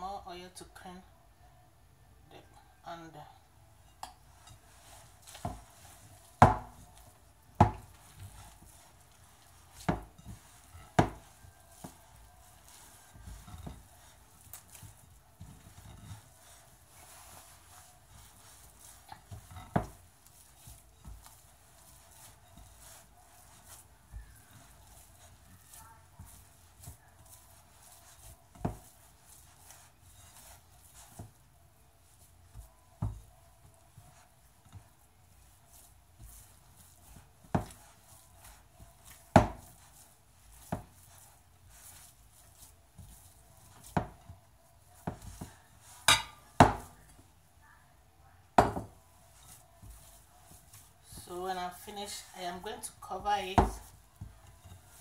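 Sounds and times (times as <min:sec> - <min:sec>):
dough being kneaded by hand: 0:02.4 - 0:55.0.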